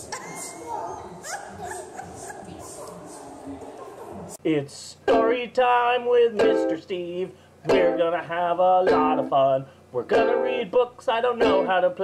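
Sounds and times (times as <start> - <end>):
young children squealing: 0.0 - 3.4.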